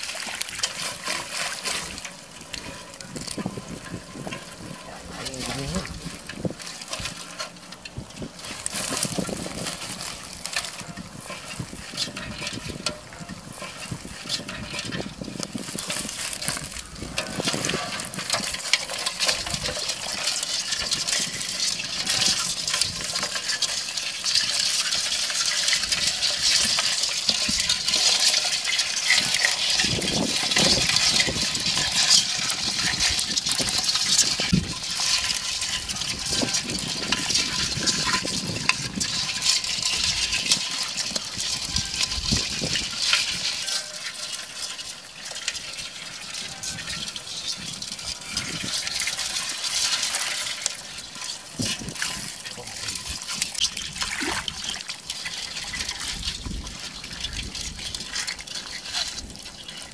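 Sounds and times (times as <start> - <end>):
small patters and ticks: 0.0 - 59.9
water splashing and dripping: 0.0 - 59.9.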